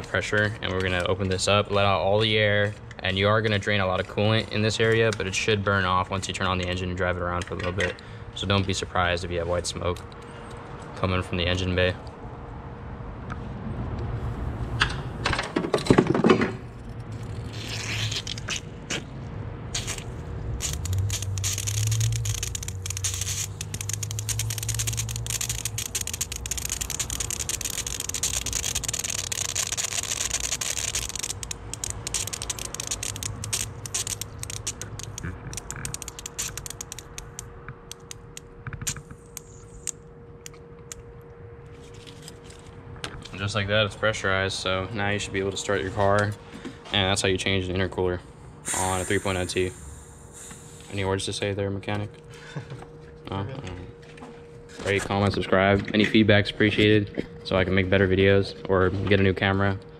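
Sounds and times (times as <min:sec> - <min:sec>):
air and coolant hissing: 0:19.8 - 0:37.1, 0:48.6 - 0:51.4
crackling clicks: 0:19.8 - 0:41.4
faint steady whine: 0:19.9 - 0:59.9.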